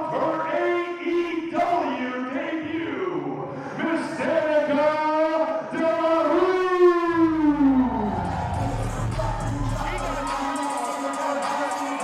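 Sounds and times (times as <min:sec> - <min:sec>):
deep bass entrance music: 0:07.7 - 0:11.6.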